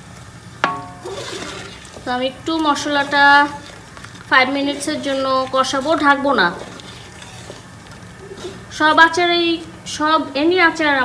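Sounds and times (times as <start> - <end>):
faint sizzle: 0.0 - 11.0
wooden spoon stirring in a pot: 0.2 - 10.0
woman speaking: 2.0 - 3.7, 4.3 - 6.8, 8.7 - 11.0.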